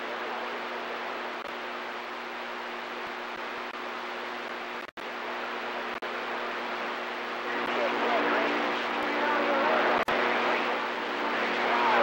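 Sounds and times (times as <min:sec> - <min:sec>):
radio hiss and static: 0:00.0 - 0:12.0
steady low hum: 0:00.0 - 0:12.0
faint garbled radio voice: 0:07.4 - 0:12.0.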